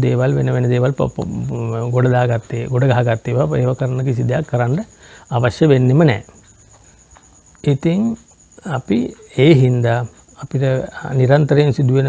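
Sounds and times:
man preaching: 0:00.0 - 0:06.3, 0:07.6 - 0:12.0.

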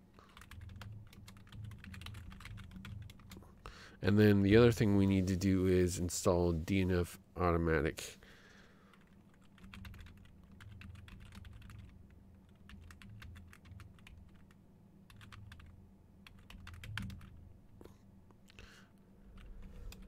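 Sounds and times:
typing on a keyboard: 0:00.2 - 0:03.4, 0:08.9 - 0:17.3.

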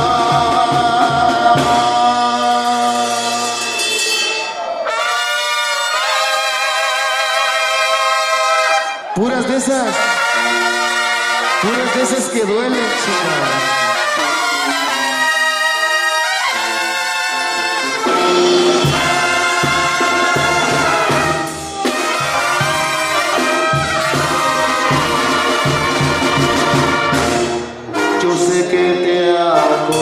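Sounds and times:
drums beating: 0:00.0 - 0:04.8, 0:11.5 - 0:28.5
brass band playing: 0:00.0 - 0:30.0
trumpets playing: 0:00.0 - 0:30.0
sousaphone bass: 0:11.6 - 0:16.8.

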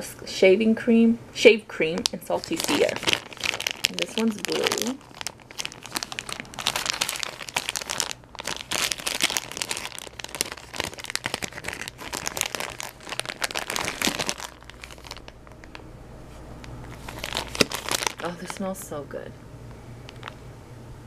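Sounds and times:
plastic bag crinkling: 0:02.0 - 0:15.8, 0:16.6 - 0:18.9, 0:20.1 - 0:20.4.

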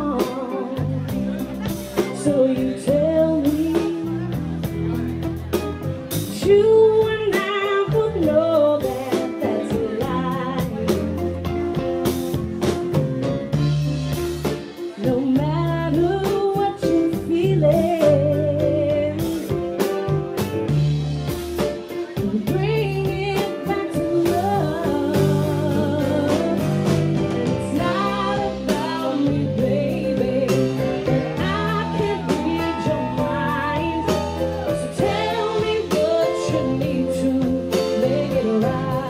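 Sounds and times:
woman singing: 0:00.0 - 0:04.6, 0:06.2 - 0:11.2, 0:14.8 - 0:19.7, 0:22.1 - 0:39.0
bass line: 0:00.0 - 0:39.0
drum kit beat: 0:00.0 - 0:39.0
electric guitar: 0:00.0 - 0:39.0.

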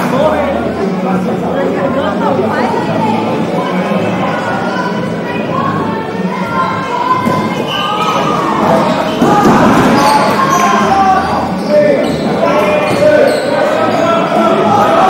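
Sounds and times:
players shouting: 0:02.5 - 0:15.0.

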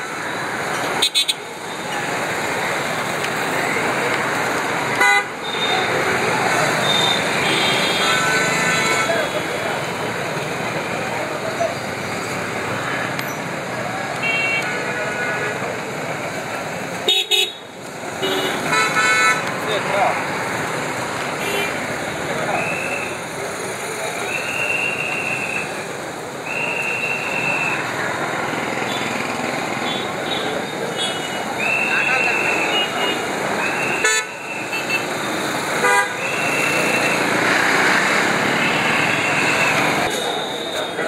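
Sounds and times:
crowd chatter: 0:00.0 - 0:41.0
traffic: 0:00.0 - 0:41.0
vehicle horns honking: 0:01.0 - 0:01.4, 0:05.0 - 0:09.5, 0:14.2 - 0:15.6, 0:17.1 - 0:19.5, 0:32.2 - 0:35.1, 0:35.8 - 0:37.2.

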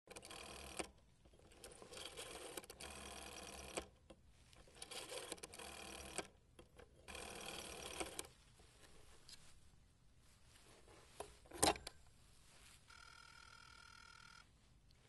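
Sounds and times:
telephone bell ringing: 0:12.9 - 0:14.5.

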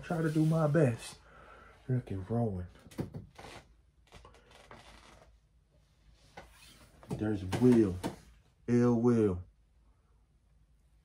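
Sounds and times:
paper print rubbing and brushing: 0:00.0 - 0:01.0
soft scrapes: 0:00.0 - 0:01.1.

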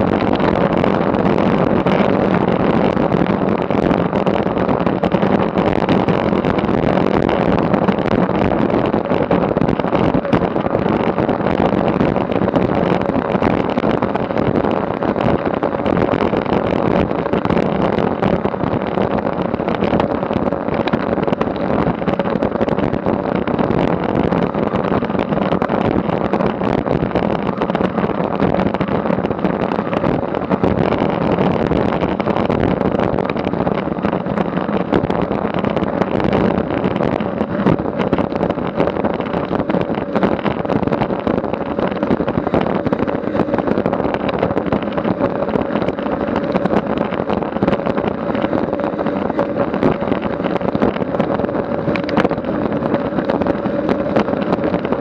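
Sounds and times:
bike tyres rolling on asphalt: 0:00.0 - 0:55.0
even hum: 0:00.0 - 0:55.0
wind rushing over microphone: 0:00.0 - 0:55.0.

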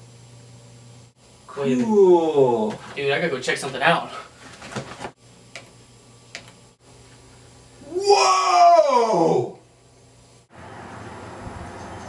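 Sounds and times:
faint steady hum: 0:00.0 - 0:10.5.

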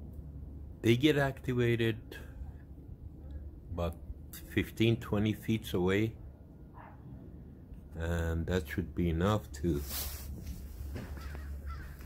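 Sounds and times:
low outdoor rumble: 0:00.0 - 0:12.0
faint bird calls: 0:11.0 - 0:12.0.

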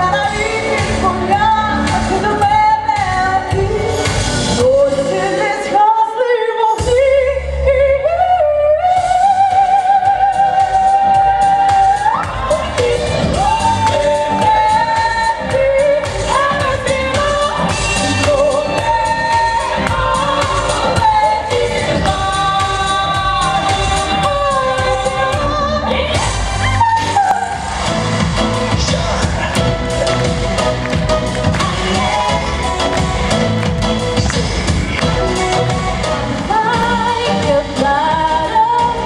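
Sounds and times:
woman singing into microphone: 0:00.0 - 0:27.8, 0:31.3 - 0:39.0
backing music: 0:00.0 - 0:39.0.

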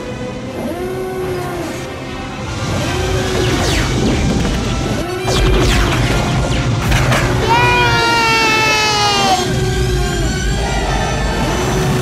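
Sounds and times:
orchestral film score: 0:00.0 - 0:12.0.

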